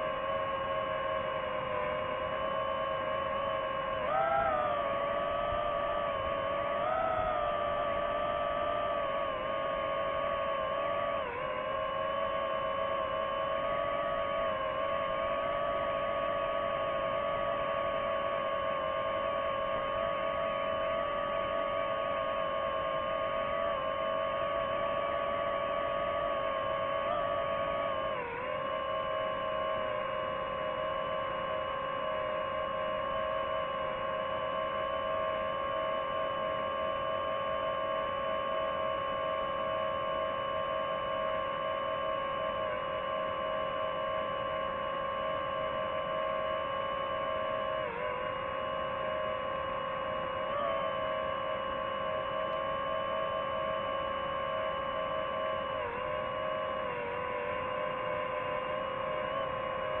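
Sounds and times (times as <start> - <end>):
drone propellers whining: 0.0 - 34.3, 44.5 - 60.0.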